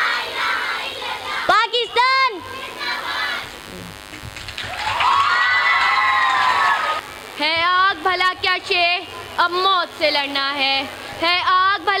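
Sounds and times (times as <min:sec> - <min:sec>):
girl speaking: 0:01.5 - 0:03.4.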